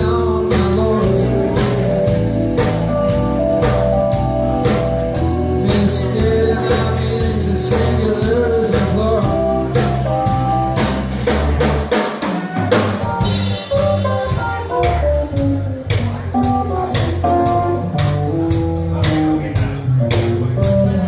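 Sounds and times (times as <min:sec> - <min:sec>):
electric keyboard: 0:00.0 - 0:11.8, 0:12.8 - 0:21.0
electric bass: 0:00.0 - 0:12.0, 0:12.6 - 0:21.0
drum hits: 0:00.0 - 0:21.0.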